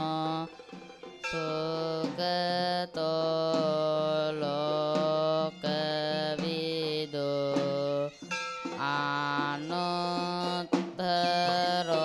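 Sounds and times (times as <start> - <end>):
man chanting in long held notes: 8.8 - 12.0.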